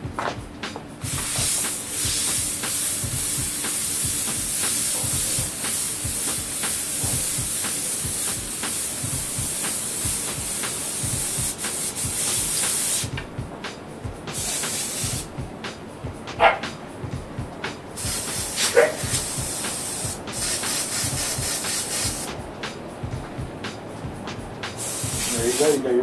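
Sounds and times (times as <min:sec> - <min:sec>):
airbrush hissing: 0:01.0 - 0:13.1, 0:14.3 - 0:15.3, 0:18.0 - 0:22.4, 0:24.7 - 0:25.9.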